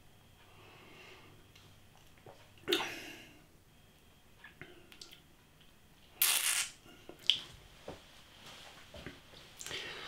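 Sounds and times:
man breathing: 9.6 - 10.0.

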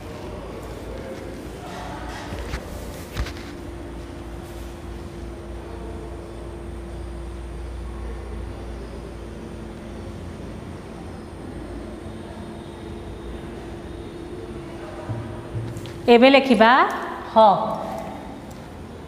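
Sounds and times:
constant hum: 0.0 - 19.0.

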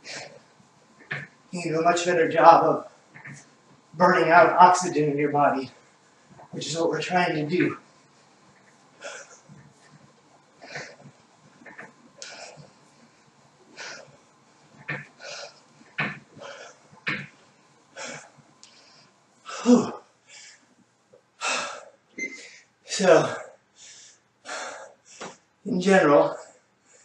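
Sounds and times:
man breathing hard: 21.4 - 25.4.

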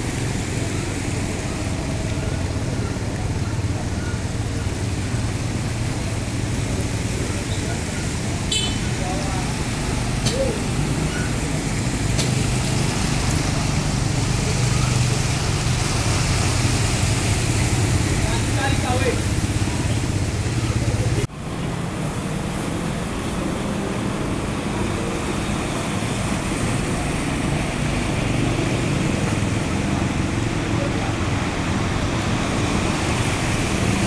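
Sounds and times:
motorcycle engines running: 0.0 - 34.0
traffic noise: 0.0 - 34.0
water splashing: 0.0 - 34.0.

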